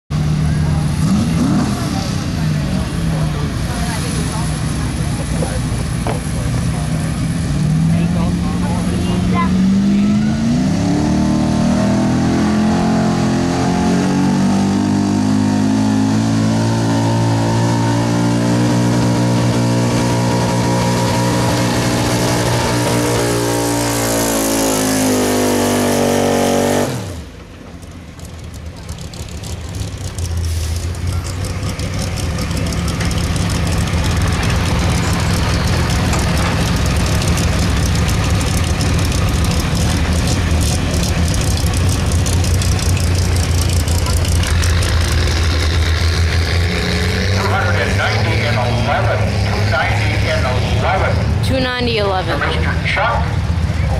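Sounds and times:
truck engine at full throttle: 0.1s - 53.9s.

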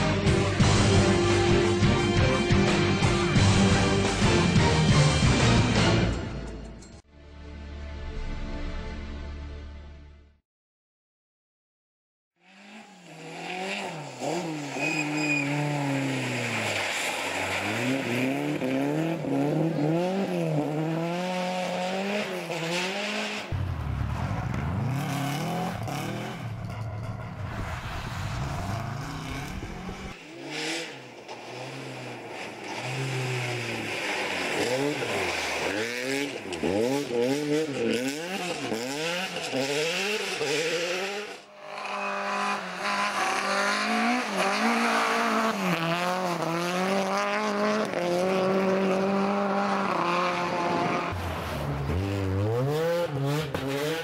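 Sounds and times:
rally car engines revving: 12.4s - 54.0s
deep rumble: 23.5s - 30.2s.

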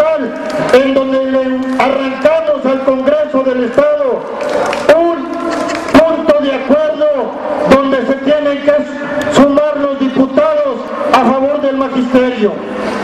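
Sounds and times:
man speaking: 0.0s - 4.3s, 4.9s - 12.6s.

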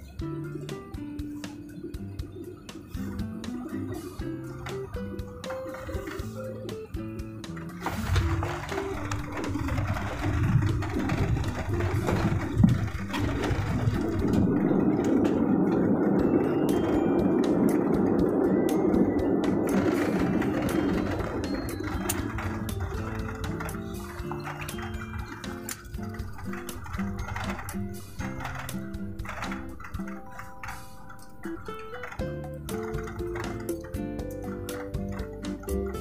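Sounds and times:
airliner engine and runway noise: 0.0s - 35.4s
guitar music: 0.0s - 36.0s.

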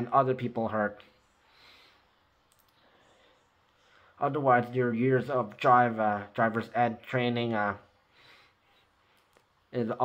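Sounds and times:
soft clicks: 2.4s - 2.8s, 9.1s - 9.6s.

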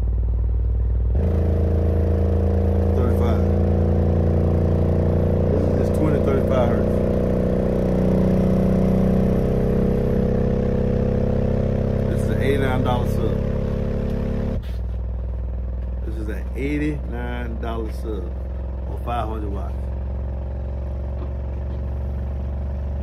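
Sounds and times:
subwoofer deep test tone: 0.0s - 23.0s.

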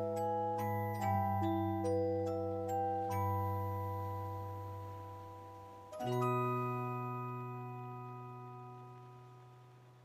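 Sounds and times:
music box chord ringing: 0.0s - 10.0s.

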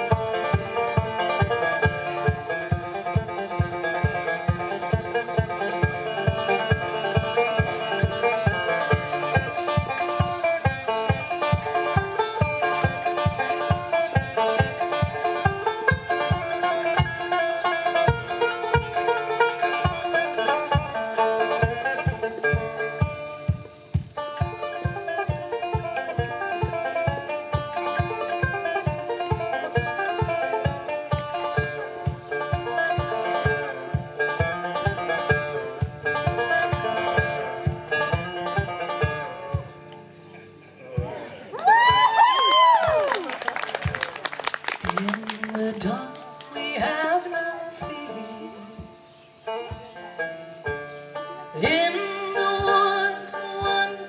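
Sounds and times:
banjo picking: 0.0s - 54.0s.

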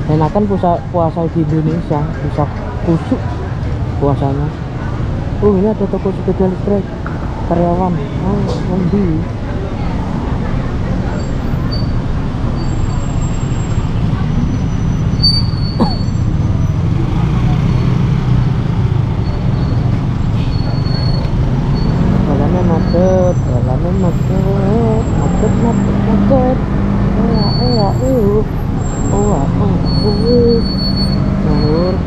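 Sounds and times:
street traffic: 0.0s - 32.0s.

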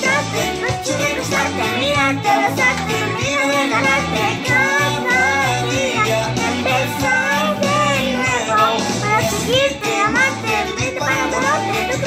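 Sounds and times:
girl singing: 0.0s - 12.0s
pop backing track: 0.0s - 12.0s.

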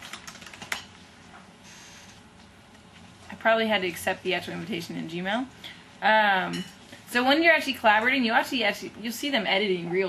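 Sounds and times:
keyboard keystrokes: 0.0s - 0.8s.

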